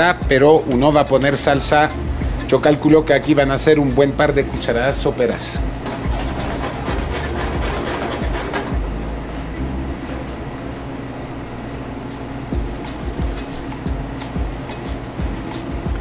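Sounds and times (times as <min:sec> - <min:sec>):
background music with low tones: 0:00.0 - 0:16.0.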